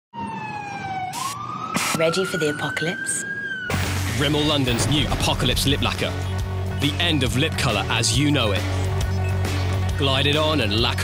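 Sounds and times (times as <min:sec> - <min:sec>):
siren-like wailing tone: 0:00.2 - 0:04.0.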